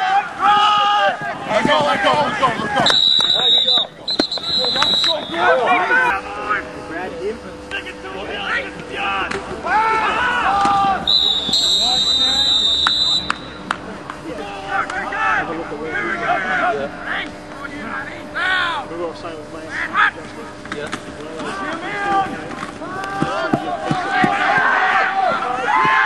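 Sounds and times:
players and spectators shouting: 0.0s - 20.6s, 21.2s - 26.0s
referee's whistle blasts: 2.8s - 5.6s, 11.0s - 13.7s.

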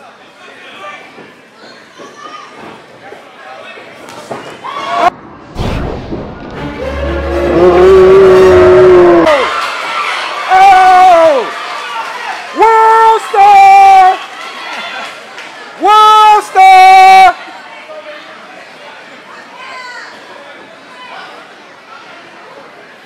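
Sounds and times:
crowd noise: 0.0s - 23.0s
air horn blasts: 6.6s - 8.7s.

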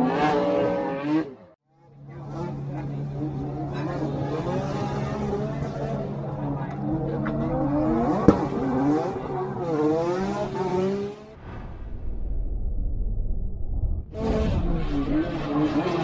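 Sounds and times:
car engines revving hard: 0.0s - 11.4s, 14.2s - 16.0s.

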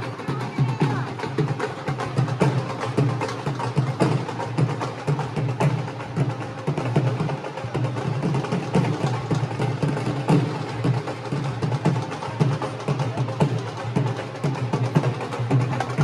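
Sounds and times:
music with fast drum beat: 0.0s - 16.0s.

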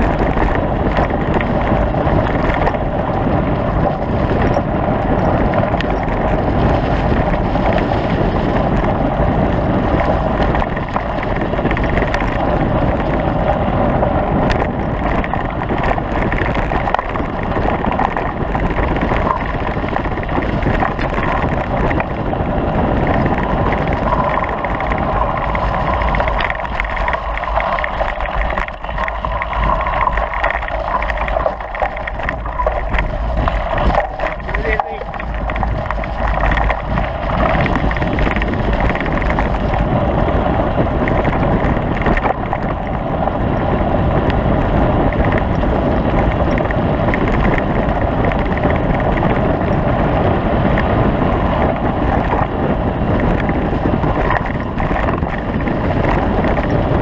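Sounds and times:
rumble of riding over ground: 0.0s - 57.0s
wind buffeting microphone: 0.0s - 57.0s.

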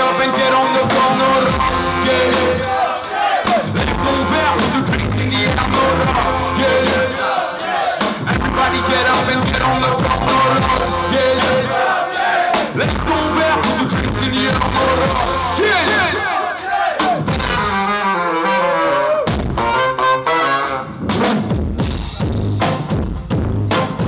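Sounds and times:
drum beat: 0.0s - 17.8s, 21.0s - 24.0s
brass band playing ska: 0.0s - 24.0s.

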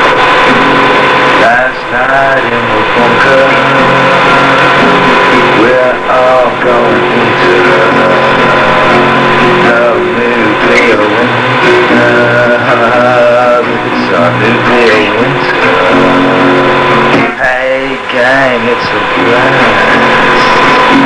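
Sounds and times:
guitar accompaniment: 0.0s - 21.0s
person singing: 0.0s - 21.0s.

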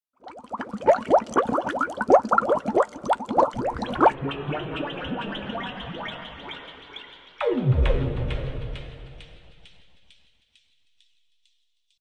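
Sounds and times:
soft gurgling wash: 0.2s - 6.1s
underwater bubbling blips: 0.2s - 7.0s.

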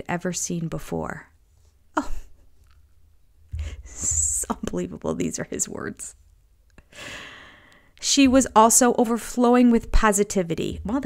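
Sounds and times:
breathy sigh: 6.9s - 7.9s.

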